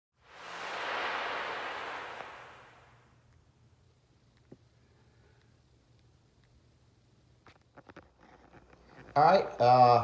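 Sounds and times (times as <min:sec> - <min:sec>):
soft hissing whoosh: 0:00.2 - 0:03.3.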